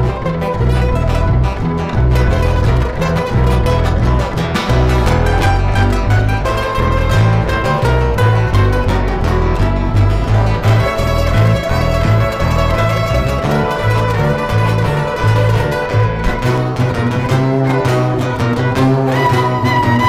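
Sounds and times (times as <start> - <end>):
acoustic guitars: 0.0 - 20.0
double bass line: 0.0 - 20.0
violin playing folk tune: 0.0 - 20.0.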